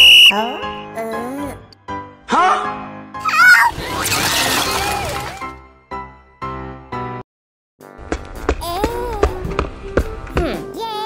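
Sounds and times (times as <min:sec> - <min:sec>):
music: 0:00.0 - 0:07.2, 0:07.8 - 0:11.0.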